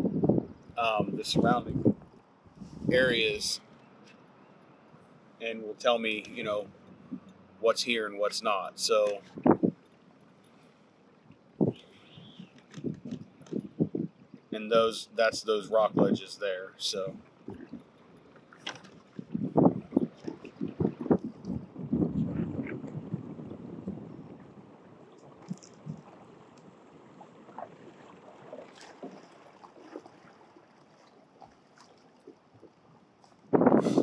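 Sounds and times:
wind on microphone: 0.0s - 3.6s, 8.8s - 9.8s, 11.6s - 17.8s, 19.1s - 26.4s, 33.4s - 34.0s
water splashing against kayak hull: 16.9s - 34.0s.

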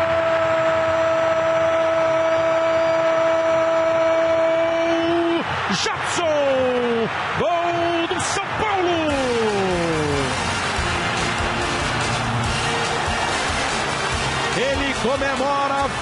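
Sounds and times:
stadium crowd cheering: 0.0s - 16.0s.

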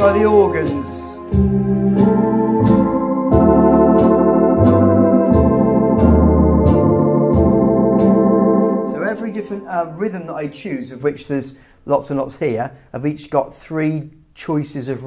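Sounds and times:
ticking accompaniment beat: 0.0s - 10.7s
electronic organ playing chords: 0.0s - 10.9s.

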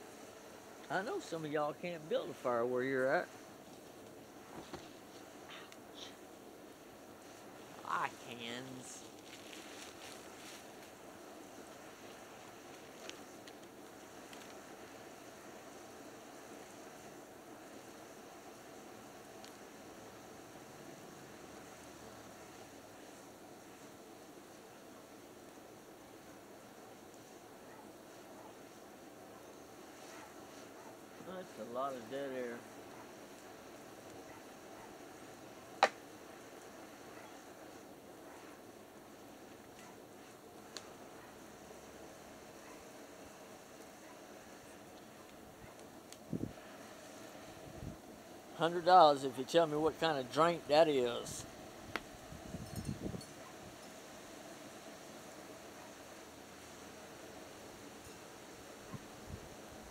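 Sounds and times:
fire popping: 0.0s - 53.9s
firewood burning with crackles: 0.0s - 59.9s
person's wordless wavering voice: 7.8s - 9.0s.

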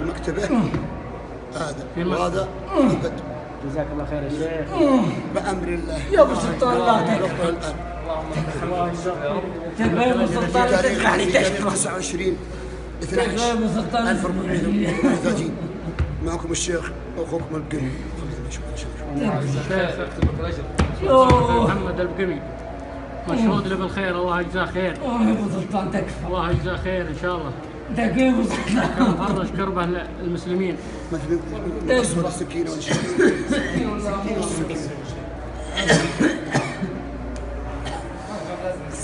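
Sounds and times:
person coughing: 32.8s - 34.1s, 35.7s - 37.0s.

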